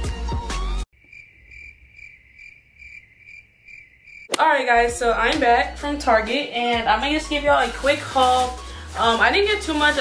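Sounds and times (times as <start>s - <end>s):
background music: 0.0s - 0.8s, 4.4s - 10.0s
crickets chirping: 0.9s - 4.3s.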